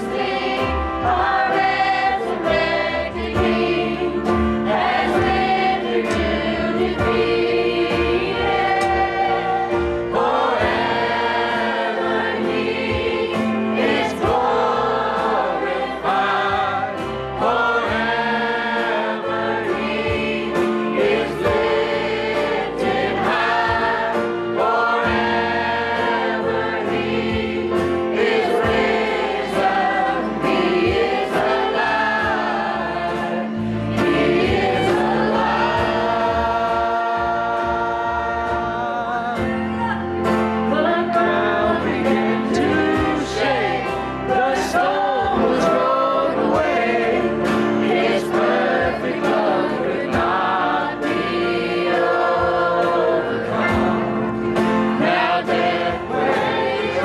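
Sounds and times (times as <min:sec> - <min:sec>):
man and women singing: 0:00.0 - 0:40.0, 0:40.6 - 0:57.0
acoustic guitar: 0:00.0 - 0:57.0
steady drum beat: 0:00.0 - 0:57.0.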